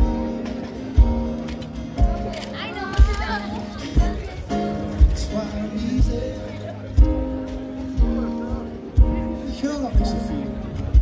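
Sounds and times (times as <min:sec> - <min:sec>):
band music over loudspeakers: 0:00.0 - 0:11.0.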